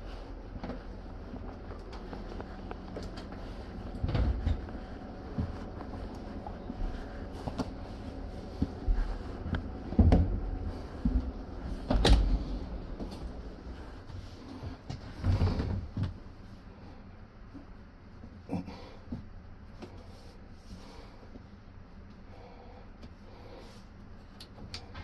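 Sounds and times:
steady low hum: 0.0s - 25.0s
knocks and thumps in railway carriage: 8.6s - 16.2s.

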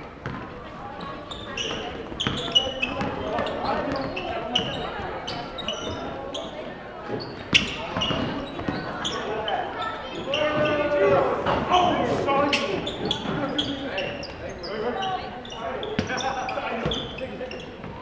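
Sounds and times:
sneaker squeaks: 0.1s - 18.0s
players shouting: 10.0s - 13.3s.

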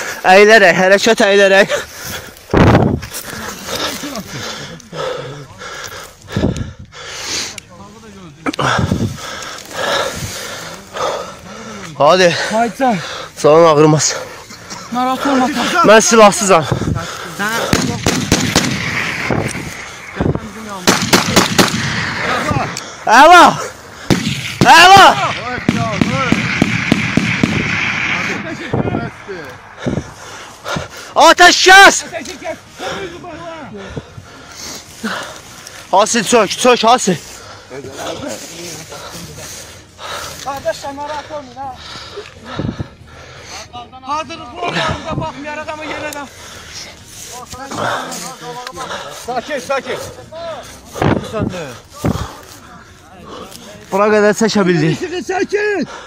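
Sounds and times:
heavy hurried breathing: 0.0s - 56.0s
men speaking: 0.0s - 56.0s
man shouting loudly: 22.3s - 23.6s, 24.6s - 26.3s, 31.2s - 33.7s.

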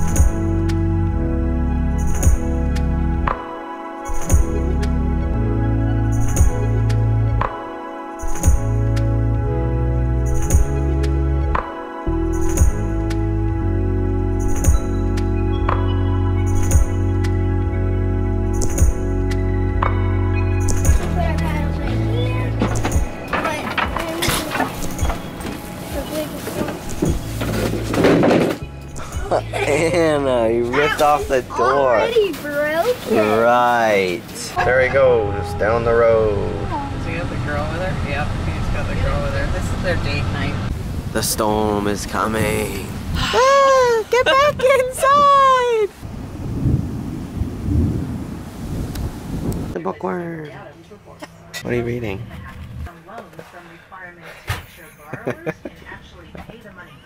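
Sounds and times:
background music: 0.0s - 45.3s
knocks and clatters of paddles: 22.5s - 25.6s, 26.4s - 28.6s
thunder rumbling: 46.0s - 49.8s.

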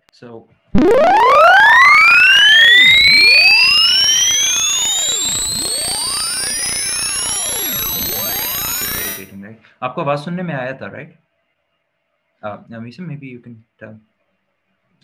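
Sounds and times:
fainter arching tones: 0.8s - 9.3s
rising sine-wave sweep: 0.8s - 9.3s.

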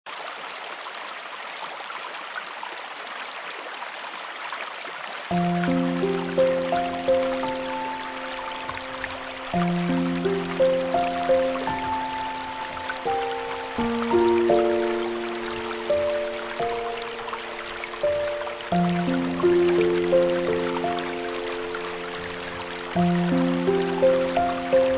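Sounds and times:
flowing water rushing: 0.1s - 24.9s
calm meditation music: 5.3s - 24.9s.

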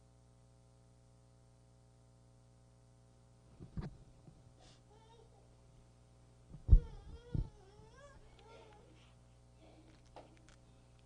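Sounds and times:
dull thump: 6.6s - 7.5s.

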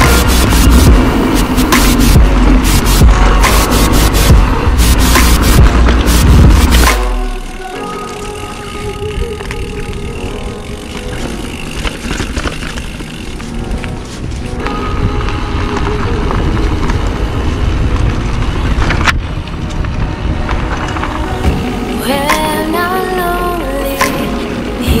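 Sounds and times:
music with held tones: 0.0s - 12.3s
bike rumbling on dirt trail: 0.0s - 25.0s.

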